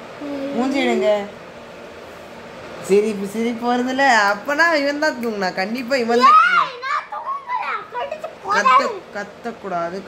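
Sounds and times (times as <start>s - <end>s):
child speaking: 6.1s - 9.1s.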